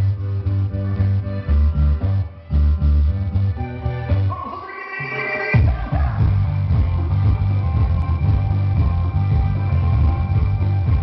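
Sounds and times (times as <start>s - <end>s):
heavy bass beat: 0.0s - 11.0s
latin dance music: 0.0s - 11.0s.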